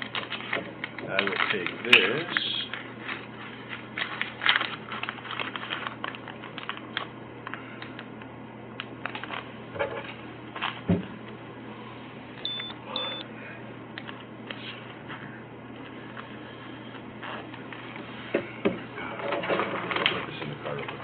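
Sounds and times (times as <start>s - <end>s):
clicks and rustles of handling: 0.0s - 8.1s, 19.2s - 21.0s
steady low hum: 0.0s - 21.0s.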